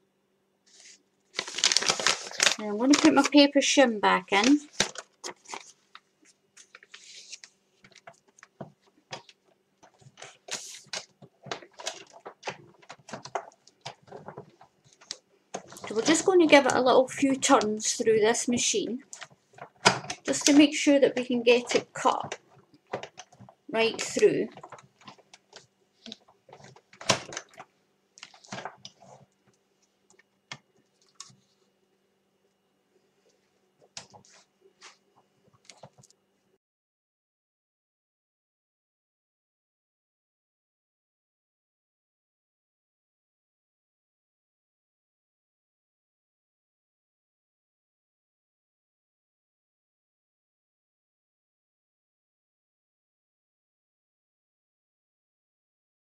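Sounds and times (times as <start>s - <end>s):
soft paper and plastic rustles: 0.6s - 31.7s, 33.2s - 36.2s
plastic plates clicking and knocking: 7.9s - 16.8s, 19.1s - 29.1s.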